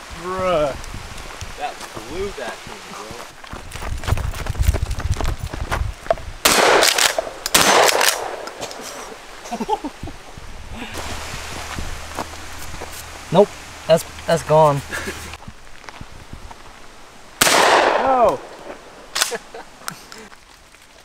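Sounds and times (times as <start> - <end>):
footsteps: 0.8 - 6.3, 8.4 - 13.4, 14.0 - 16.9, 18.3 - 21.0
shotgun blasts: 6.4 - 8.7, 17.4 - 18.6.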